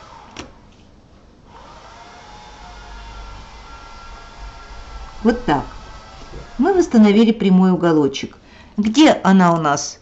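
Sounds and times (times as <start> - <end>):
low rumble and rustle: 2.4 - 7.7.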